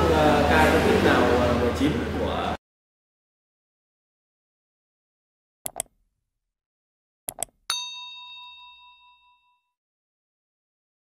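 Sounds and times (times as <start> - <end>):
quick clicks: 5.7 - 6.0, 7.3 - 7.6
bright bell-like ding: 7.7 - 9.8.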